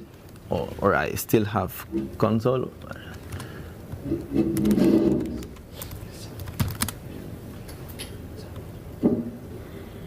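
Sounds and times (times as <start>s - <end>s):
laptop keys clicking: 2.8s - 7.0s.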